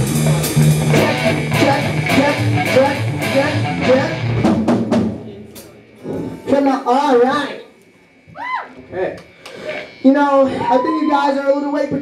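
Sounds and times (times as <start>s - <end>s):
person whooping: 8.3s - 8.8s, 10.4s - 11.5s.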